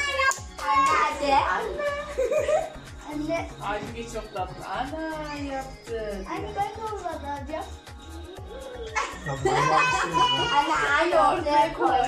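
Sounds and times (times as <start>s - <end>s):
background music with low beat: 0.0s - 12.0s
laughter: 2.1s - 2.8s, 9.0s - 10.6s
excited voices: 8.5s - 12.0s.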